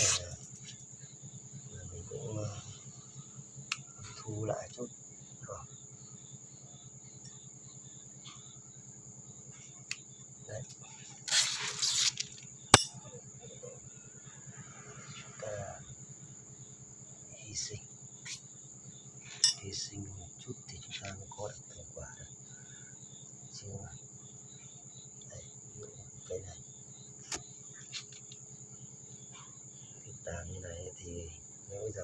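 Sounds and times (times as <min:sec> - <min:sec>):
crickets trilling: 0:00.0 - 0:32.0
leaves rustling: 0:11.2 - 0:12.4.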